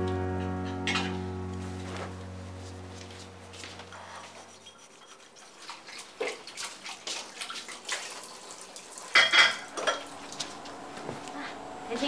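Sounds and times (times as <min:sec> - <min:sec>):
sponge scrubbing ceramic bowl: 0:04.0 - 0:07.8
water splashing: 0:05.0 - 0:10.6.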